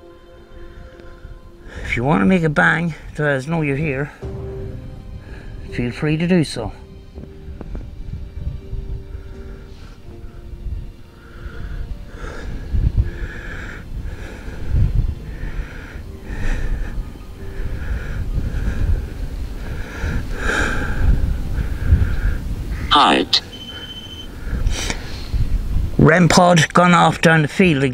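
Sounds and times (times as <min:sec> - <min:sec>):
wind buffeting microphone: 0:00.7 - 0:26.4.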